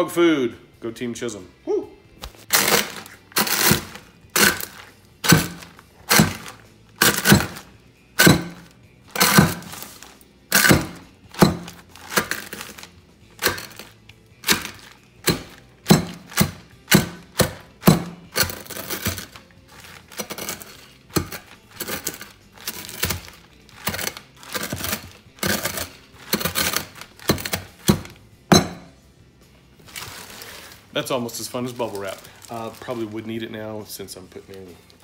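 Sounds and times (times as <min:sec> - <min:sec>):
glass thudding on countertop: 0:28.5 - 0:28.9
eggshells crushed in plastic bag: 0:29.8 - 0:33.3.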